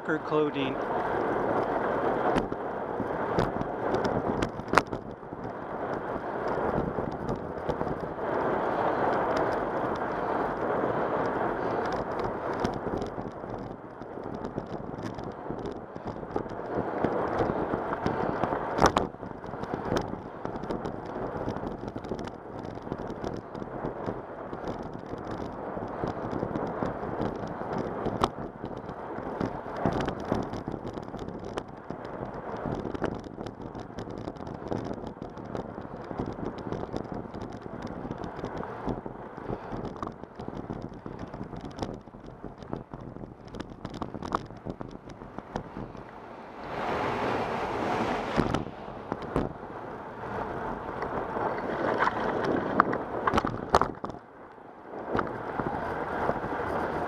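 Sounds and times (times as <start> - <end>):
wind buffeting microphone: 0.0 - 57.0
clicks and rattles: 11.2 - 46.2, 50.6 - 54.2.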